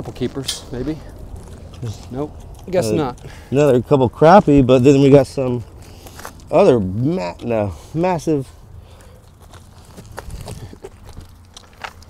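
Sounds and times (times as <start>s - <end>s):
crunches and clicks on grit: 9.0s - 12.0s.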